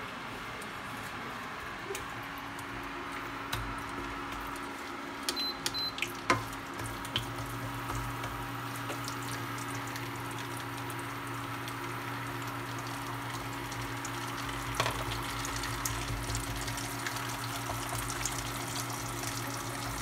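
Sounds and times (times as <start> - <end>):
eggs sizzling in a pan: 2.1 - 20.0.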